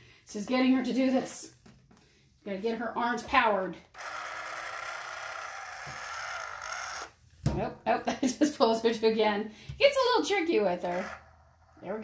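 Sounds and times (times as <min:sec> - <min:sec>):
electric motor whirring: 0:03.9 - 0:07.2, 0:10.8 - 0:11.8.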